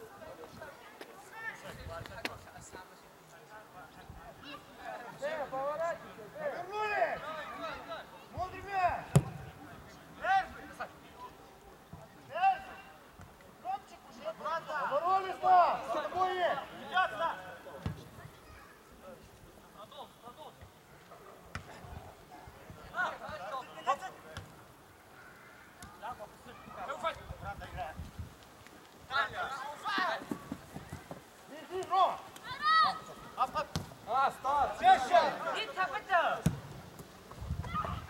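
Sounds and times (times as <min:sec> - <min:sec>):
footballers shouting: 0:05.0 - 0:11.6, 0:13.8 - 0:18.4, 0:29.1 - 0:36.7
ball being kicked: 0:09.1 - 0:09.5, 0:33.6 - 0:34.0, 0:36.4 - 0:38.0.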